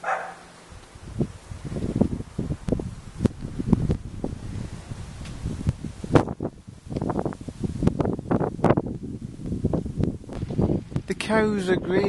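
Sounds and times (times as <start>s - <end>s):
leaves rustling: 0.0s - 12.0s
wind buffeting microphone: 0.0s - 12.0s.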